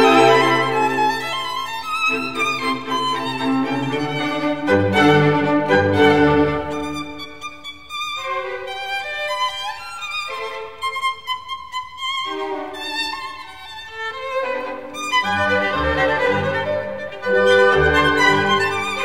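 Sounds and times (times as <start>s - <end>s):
violin melody: 0.0s - 19.0s.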